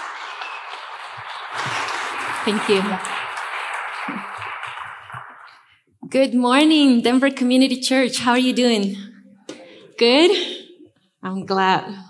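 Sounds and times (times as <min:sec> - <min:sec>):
congregation applauding: 0:00.0 - 0:05.8.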